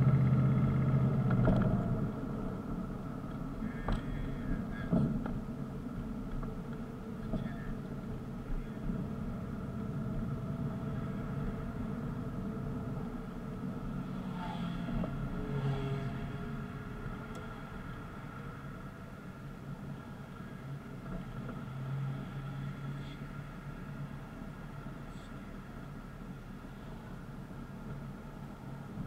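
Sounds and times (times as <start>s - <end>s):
car engine and road hum: 0.0s - 29.0s
motorcycle passing: 13.9s - 18.6s.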